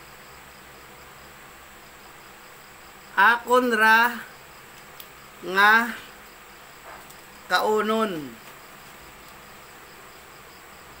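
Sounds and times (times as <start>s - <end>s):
insects chirring: 0.0s - 11.0s
man's voice: 3.2s - 4.3s, 5.4s - 6.1s, 7.5s - 8.4s.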